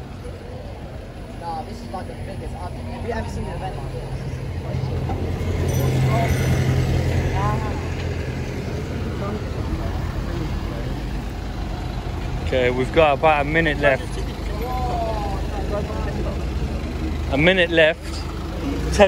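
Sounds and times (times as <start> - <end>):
bus engine rumble: 0.0 - 19.0
faint voices of passers-by: 0.0 - 19.0
street traffic noise: 0.0 - 19.0.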